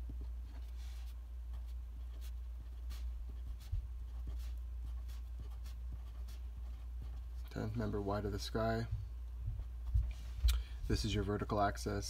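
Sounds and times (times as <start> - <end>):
steady low hum: 0.0 - 12.0
pen writing on paper: 0.2 - 7.4.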